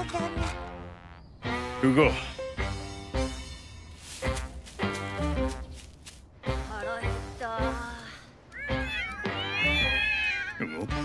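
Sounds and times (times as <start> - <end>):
light background music: 0.0 - 11.0
cartoon cat meowing: 8.6 - 10.7.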